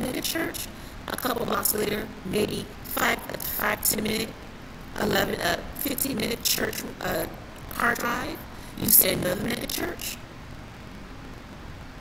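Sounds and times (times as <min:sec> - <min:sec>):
low room background noise: 0:00.0 - 0:12.0.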